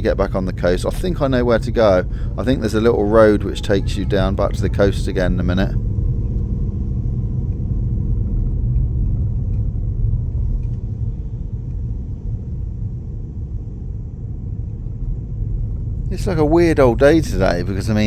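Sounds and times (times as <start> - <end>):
car interior engine and tyre rumble: 0.0 - 18.0.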